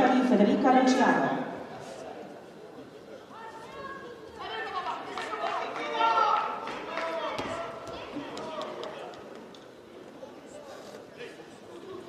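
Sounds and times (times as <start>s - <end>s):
echoing chatter in hall: 0.0s - 12.0s.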